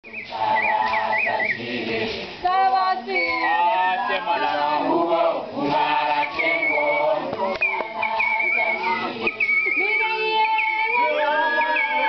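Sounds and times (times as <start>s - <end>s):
high warbling call: 0.0s - 1.7s, 5.9s - 12.0s
group singing: 0.0s - 12.0s.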